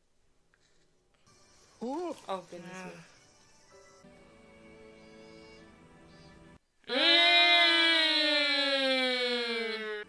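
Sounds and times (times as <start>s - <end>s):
woman's drawn-out oooh: 6.9s - 10.0s.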